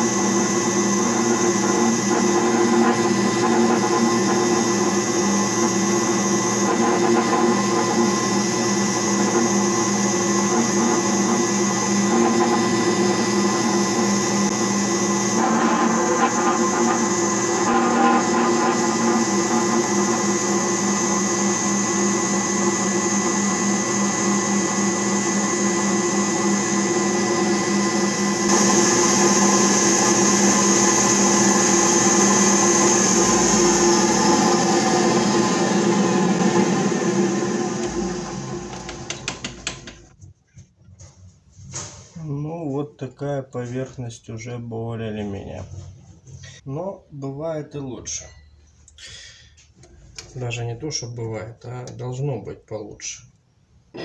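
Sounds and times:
lathe motor and gear whine: 0:00.0 - 0:40.0.

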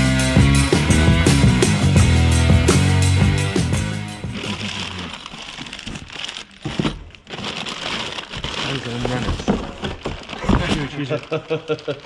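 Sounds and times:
rock music: 0:00.0 - 0:05.1
cardboard rustling: 0:04.2 - 0:12.0
plastic wrapping crinkling: 0:04.2 - 0:12.0.

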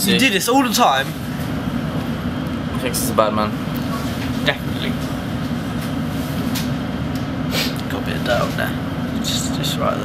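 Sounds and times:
underground train rumble: 0:00.0 - 0:10.0.

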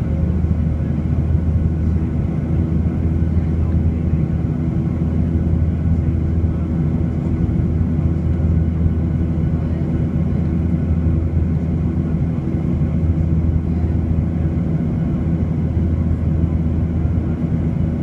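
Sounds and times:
jet engines droning in cabin: 0:00.0 - 0:18.0.

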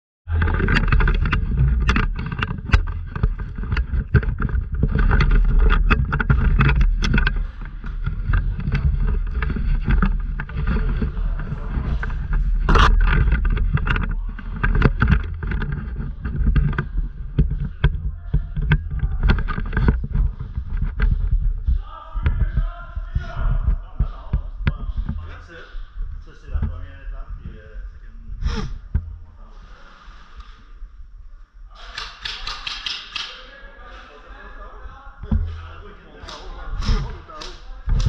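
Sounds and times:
sharp clicks and knocks: 0:00.3 - 0:25.4, 0:31.9 - 0:33.4
camera rumble and rustle: 0:00.3 - 0:38.0.

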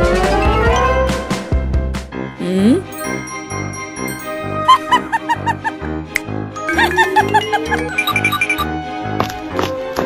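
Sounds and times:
cheerful background music: 0:00.0 - 0:10.0
sped-up cartoon laugh: 0:04.6 - 0:05.8, 0:06.7 - 0:08.3.

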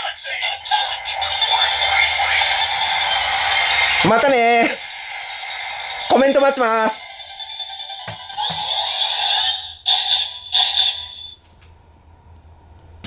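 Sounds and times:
synthesized toy tone: 0:07.1 - 0:11.4.

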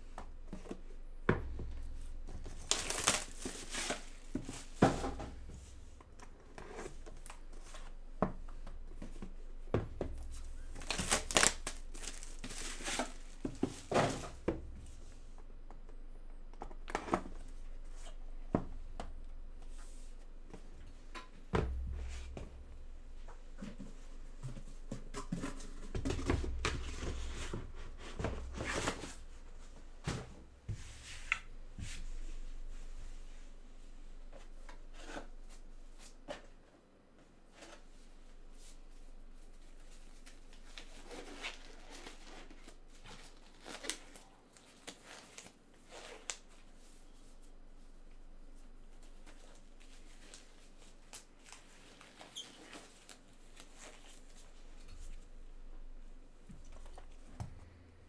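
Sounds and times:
dull handling thumps: 0:21.5 - 0:24.0.

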